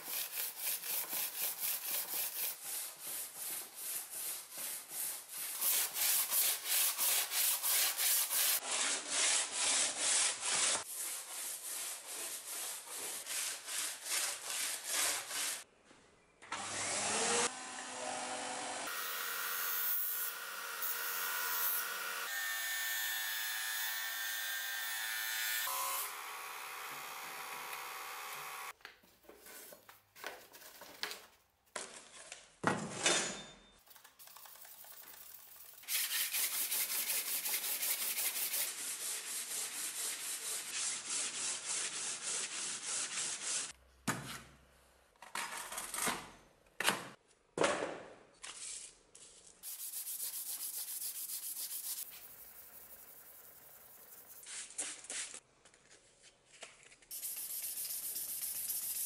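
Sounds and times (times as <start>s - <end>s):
chisel scraping on sandpaper: 0.0s - 15.6s, 34.4s - 43.7s, 49.6s - 55.4s.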